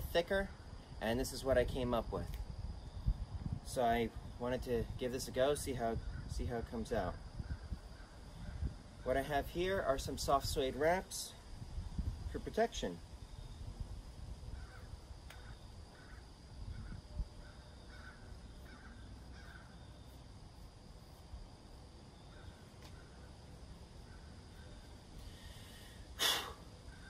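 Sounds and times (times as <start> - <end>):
distant bird calls: 7.3 - 9.2, 14.5 - 20.3, 22.1 - 27.0
short loud hiss: 25.2 - 26.7.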